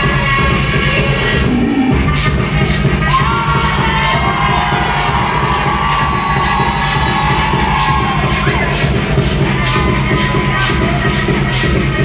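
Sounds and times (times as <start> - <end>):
loud music with steady beat: 0.0 - 12.0
crowd cheering and shouting: 2.6 - 12.0.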